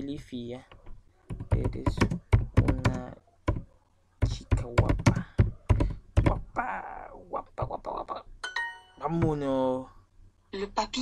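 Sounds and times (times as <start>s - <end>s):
typing on a computer keyboard: 0.7s - 6.4s.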